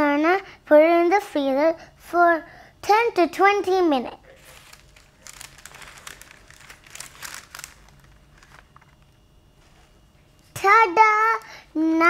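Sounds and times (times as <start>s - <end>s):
baking paper crinkling: 4.3s - 10.0s.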